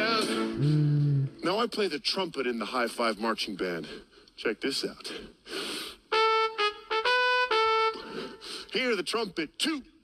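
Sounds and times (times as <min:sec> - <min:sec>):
trumpet playing short notes: 0:06.1 - 0:08.1.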